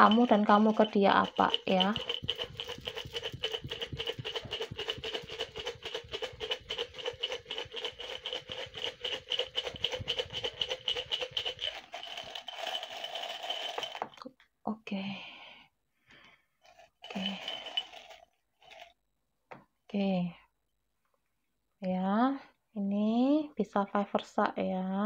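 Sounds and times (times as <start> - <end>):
paper slips rattling in glass jar: 0.0 - 14.3, 16.7 - 18.9.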